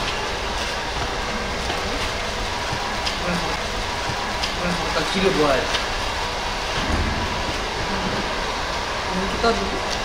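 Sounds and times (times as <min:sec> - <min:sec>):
background rumble: 0:05.7 - 0:10.0.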